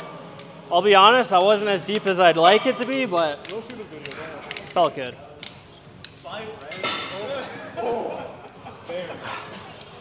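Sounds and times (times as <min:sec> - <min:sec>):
men talking: 0:00.7 - 0:05.4, 0:06.2 - 0:10.0.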